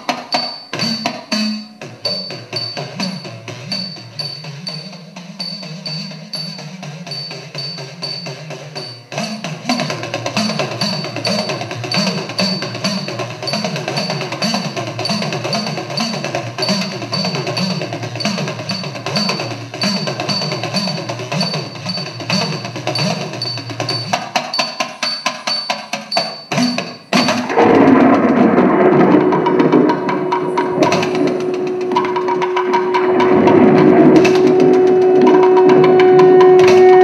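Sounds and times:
fast wooden percussion strikes: 0.0 - 37.0
sustained musical backing: 26.4 - 37.0
held wind instrument note: 30.0 - 37.0.

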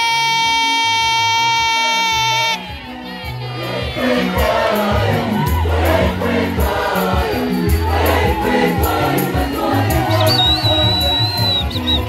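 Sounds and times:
bass line: 0.0 - 12.0
choir singing: 2.5 - 12.0
drum kit beat: 3.8 - 12.0.

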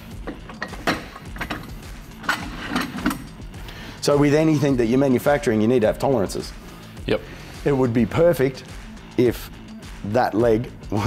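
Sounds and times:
metal clicks and knocks: 0.1 - 3.4.

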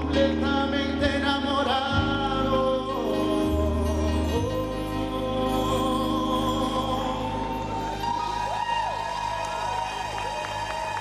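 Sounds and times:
live band playing ballad: 0.0 - 11.0
audience cheering: 7.6 - 11.0
people clapping: 8.2 - 11.0.

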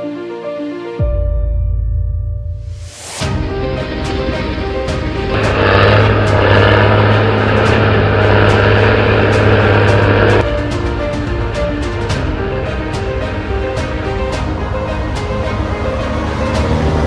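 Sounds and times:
background music with steady beat: 0.0 - 17.0
heavy diesel engine running: 3.6 - 10.4.

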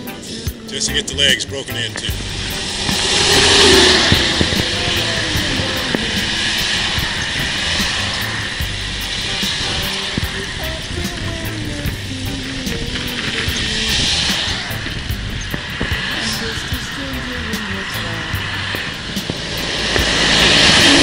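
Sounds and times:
road rumble: 0.0 - 21.0
wind noise on microphone: 0.0 - 21.0.

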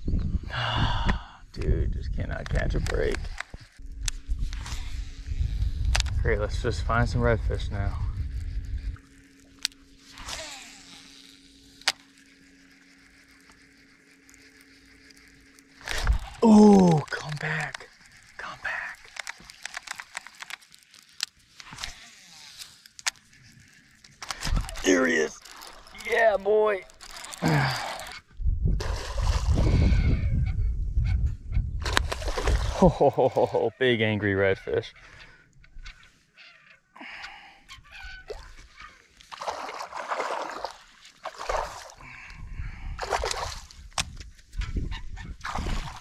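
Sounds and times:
wind rumbling on microphone: 0.0 - 9.2, 27.6 - 33.0, 41.5 - 46.0
trolling motor humming: 1.6 - 44.8
fishing reel clicks: 7.5 - 16.3, 17.0 - 28.3.

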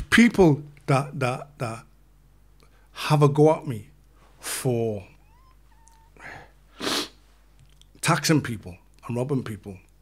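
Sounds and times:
man breathing: 6.1 - 7.2.

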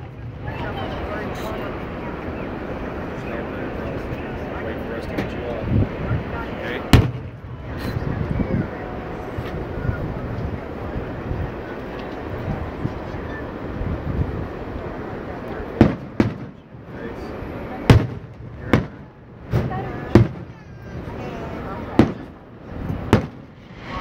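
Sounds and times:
steady background noise: 0.0 - 24.0
firework shells bursting: 6.9 - 7.4, 15.8 - 16.8, 17.9 - 20.6, 22.0 - 23.7.

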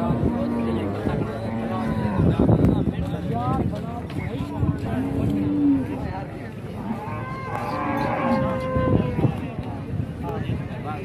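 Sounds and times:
livestock market background noise: 0.0 - 11.0
cow mooing: 6.8 - 9.2.

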